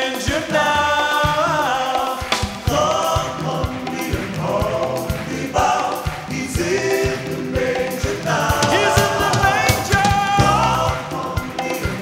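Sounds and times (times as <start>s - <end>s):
gospel choir singing: 0.0s - 12.0s
repeating drum pattern: 0.0s - 12.0s.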